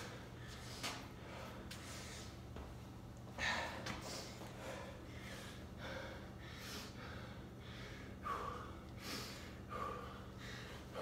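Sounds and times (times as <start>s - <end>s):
man breathing hard: 0.0s - 2.5s, 3.3s - 11.0s.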